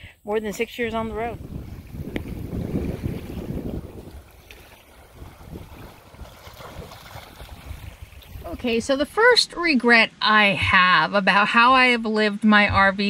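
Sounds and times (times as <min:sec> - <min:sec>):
wind rumbling on microphone: 0:00.0 - 0:09.8
small waves lapping: 0:00.0 - 0:11.0.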